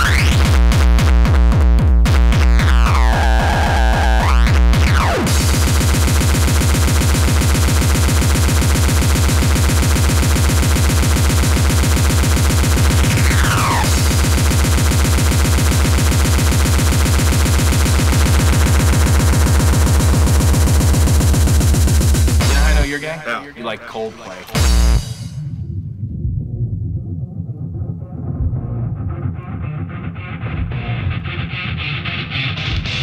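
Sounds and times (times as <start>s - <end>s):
fast heavy kick drums: 0.0s - 23.2s, 24.6s - 25.4s
dense noisy layer: 2.2s - 25.4s.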